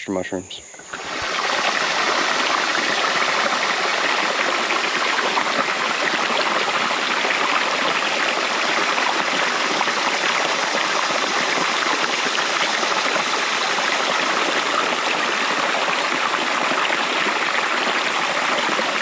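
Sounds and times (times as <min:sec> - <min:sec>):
creek rushing over logs: 0:00.7 - 0:19.0.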